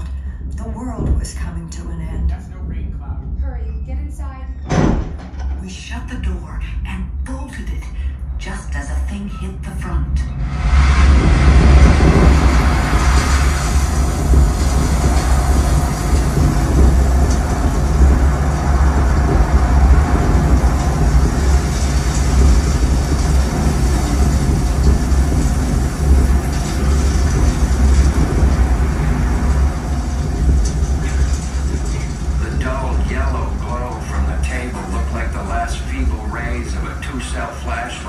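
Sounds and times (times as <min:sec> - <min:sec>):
loud wind roar with deep rumble: 0:10.2 - 0:38.0.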